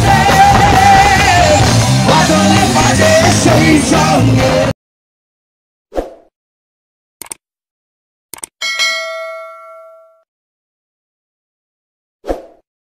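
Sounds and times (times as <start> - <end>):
mouse clicks: 8.4 - 8.6
bright bell ding: 8.6 - 10.3.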